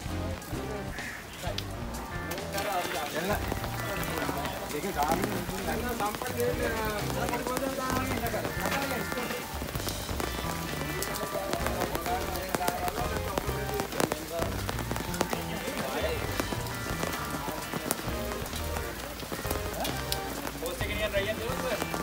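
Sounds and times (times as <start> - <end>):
dense crackling patter: 0.0 - 22.0
voices: 0.0 - 22.0.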